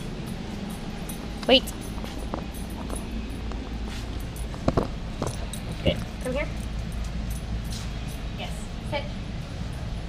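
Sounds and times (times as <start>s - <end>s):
store background hum: 0.0s - 10.0s.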